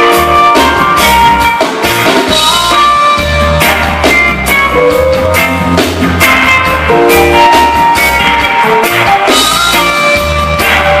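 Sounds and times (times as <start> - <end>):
bass guitar: 0.0 - 11.0
electric guitar: 0.0 - 11.0.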